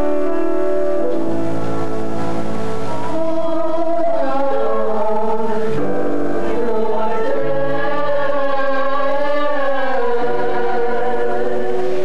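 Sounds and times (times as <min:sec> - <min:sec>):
cast singing in chorus: 0:02.9 - 0:12.0.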